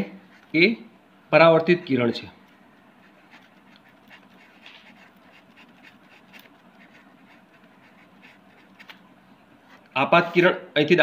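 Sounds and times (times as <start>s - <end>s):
ballpoint pen scratching paper: 3.0s - 9.0s.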